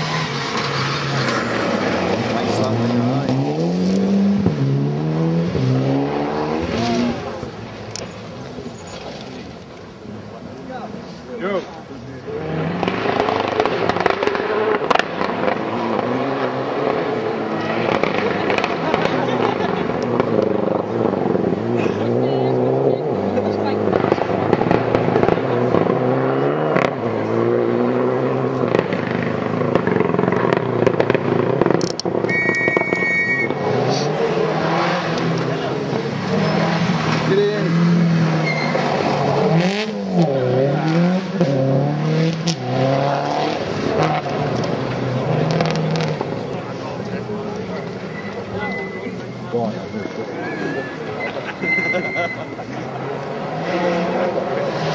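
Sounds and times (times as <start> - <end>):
rally car engines revving: 0.0 - 54.9
sharp cracks: 12.8 - 16.0
high steady tone: 32.3 - 33.6.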